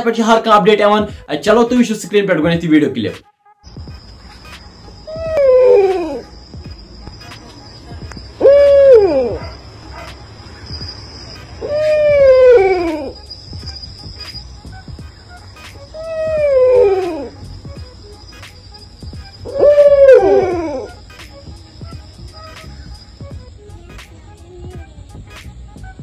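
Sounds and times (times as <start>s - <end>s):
faint high whine: 3.7s - 24.1s
long wailing cry: 4.8s - 7.1s, 7.7s - 13.3s, 15.9s - 18.2s, 19.4s - 22.6s
dogs howling: 5.0s - 6.3s, 8.4s - 13.3s, 15.9s - 17.4s, 19.4s - 21.0s.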